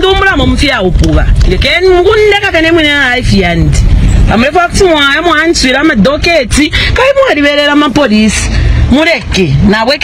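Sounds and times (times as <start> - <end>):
low rumble: 0.0 - 10.0
woman speaking heatedly: 0.0 - 10.0.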